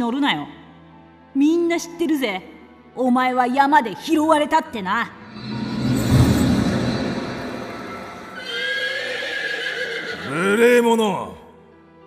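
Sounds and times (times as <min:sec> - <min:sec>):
horse whinnying: 0:08.2 - 0:10.9.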